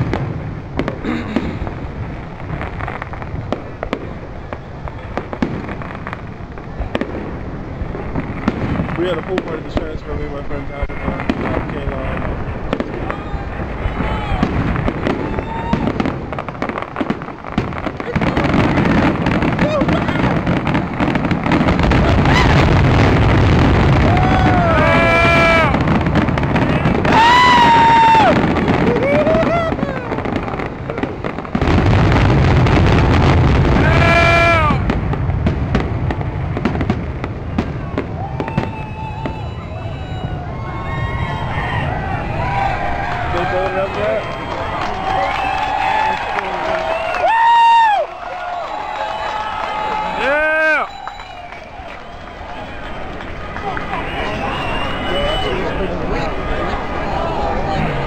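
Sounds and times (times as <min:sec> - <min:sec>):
fireworks bursting and crackling: 0:00.0 - 0:58.0.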